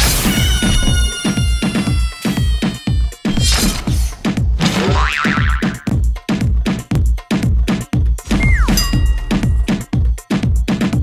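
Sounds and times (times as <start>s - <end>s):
springy warbling sound effect: 8.3s - 9.8s.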